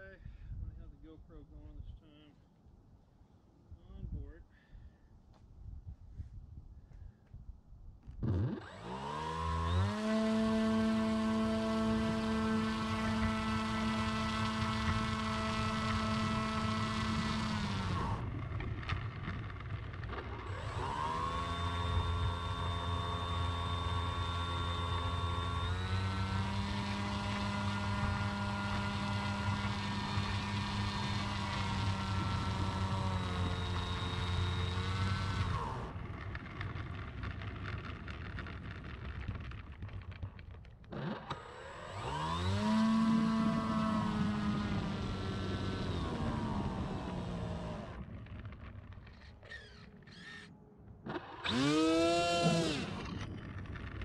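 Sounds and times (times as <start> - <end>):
electric motor propeller whine: 8.2 - 54.0.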